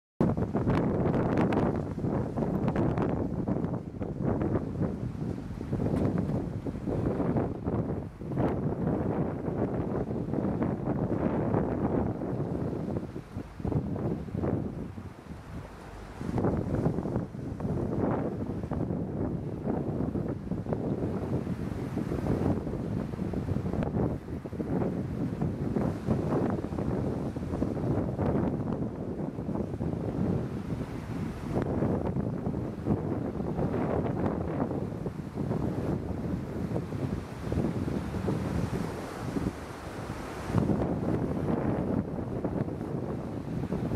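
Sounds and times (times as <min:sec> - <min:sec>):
wind buffeting microphone: 0:00.2 - 0:43.9.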